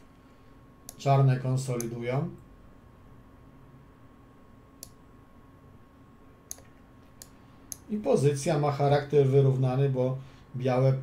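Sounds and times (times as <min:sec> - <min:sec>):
computer mouse clicks: 0:04.8 - 0:05.0, 0:06.5 - 0:07.9.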